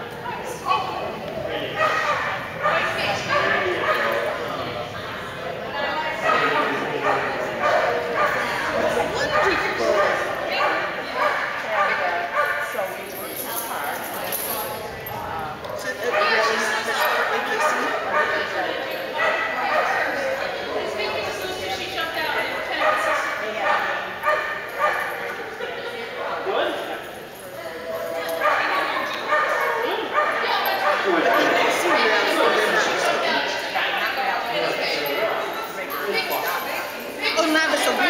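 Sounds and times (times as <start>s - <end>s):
people talking: 0.0s - 38.0s
dog barking: 1.8s - 4.4s, 6.2s - 12.6s, 16.0s - 18.5s, 19.2s - 20.0s, 22.7s - 25.2s, 28.4s - 31.1s.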